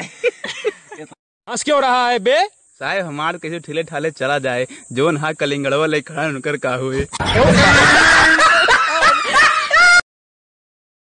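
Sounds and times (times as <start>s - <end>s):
woman laughing hard: 7.1s - 10.0s.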